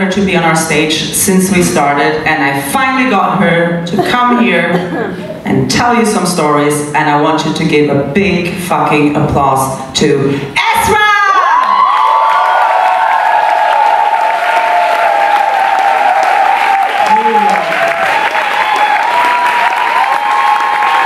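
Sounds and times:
high held cheers: 0:11.2 - 0:21.0
audience clapping: 0:11.9 - 0:21.0.

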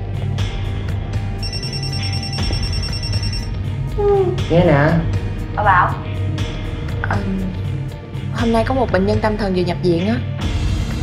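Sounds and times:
background music with low drone: 0:00.0 - 0:11.0
mobile phone ringing: 0:01.4 - 0:03.6.

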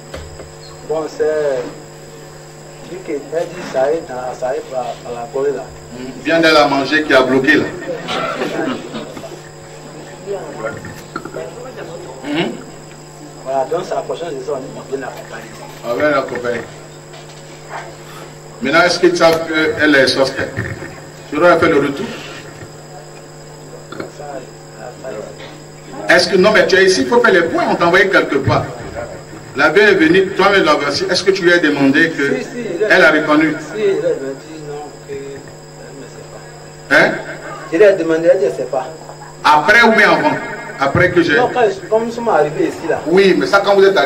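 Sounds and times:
low electrical hum: 0:00.0 - 0:44.0
man speaking: 0:24.0 - 0:44.0.

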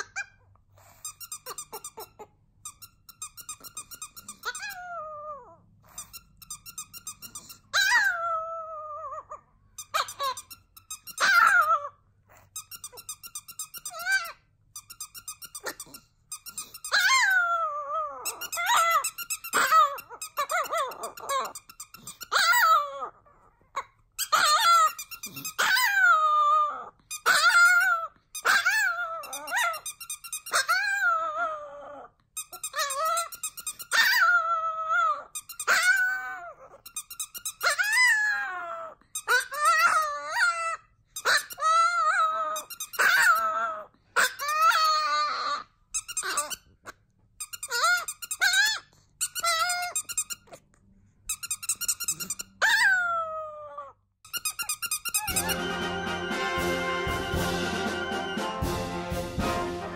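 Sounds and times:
squeaky toy squeaking: 0:00.0 - 0:58.8
dog howling: 0:04.6 - 0:05.6, 0:17.0 - 0:19.0, 0:25.6 - 0:29.8, 0:30.7 - 0:32.1, 0:55.3 - 0:58.7.

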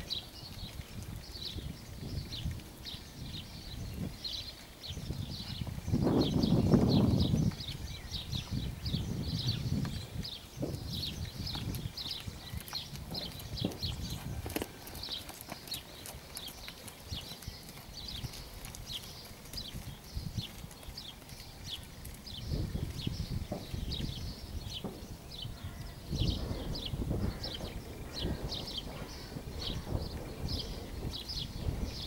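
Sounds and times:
horse hooves trotting on sand: 0:00.0 - 0:32.0.

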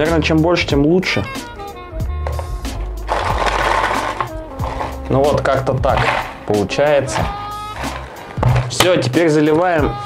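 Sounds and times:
background music: 0:00.0 - 0:10.0
foil balls rattling in plastic bottle: 0:02.3 - 0:09.1.

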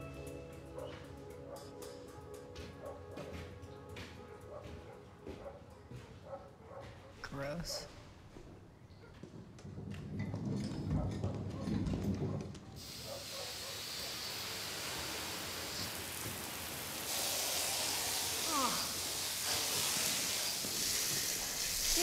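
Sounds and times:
hose spraying water: 0:12.8 - 0:22.0.

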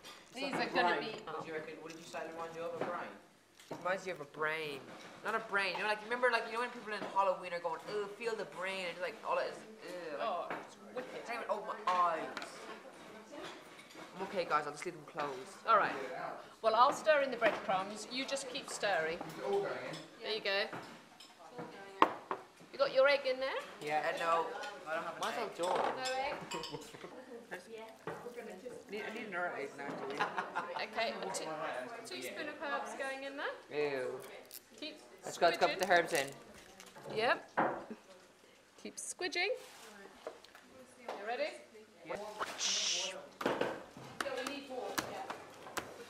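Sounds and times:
voices talking: 0:42.2 - 0:43.3.

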